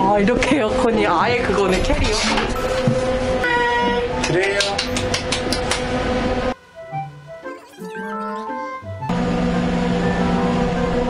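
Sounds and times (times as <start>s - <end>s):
steady hum: 0.0s - 7.5s, 8.9s - 11.0s.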